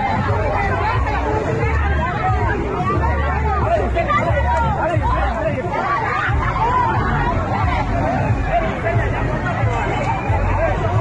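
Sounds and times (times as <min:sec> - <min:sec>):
people shouting and talking: 0:00.0 - 0:11.0.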